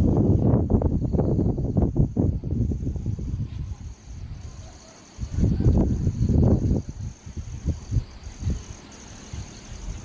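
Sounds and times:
faint high insect trill: 0.0 - 10.0
wind buffeting microphone: 0.0 - 10.0.

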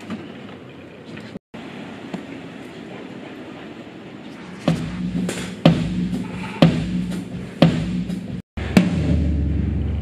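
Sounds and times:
street background noise: 0.0 - 5.6.

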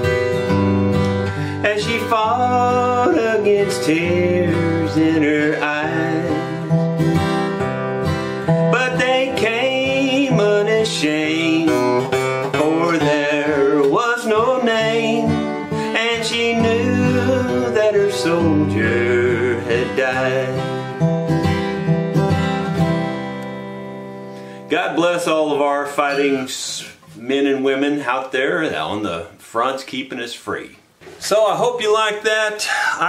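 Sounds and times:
acoustic guitar: 0.0 - 33.0
man singing a country ballad: 1.3 - 7.2, 8.1 - 21.1, 24.6 - 29.3, 31.2 - 33.0.

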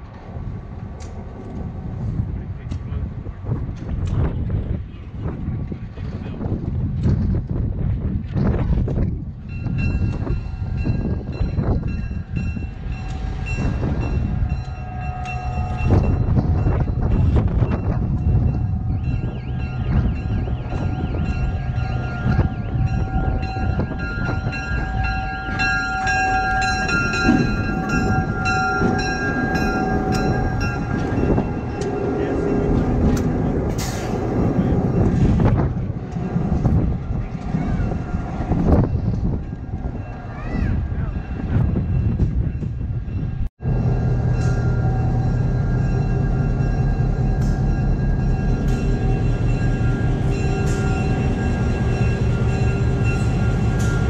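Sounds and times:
locomotive rumbling: 0.0 - 54.0.

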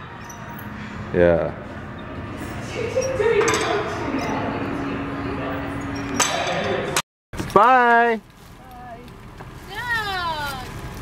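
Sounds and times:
gym background noise: 0.0 - 7.0
sharp metal clank: 1.6 - 4.9, 5.7 - 7.0
weight stack clinking: 1.9 - 7.0.

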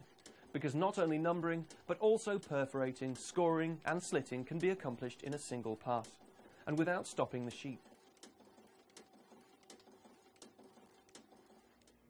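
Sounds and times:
machine clicking: 0.0 - 12.0.

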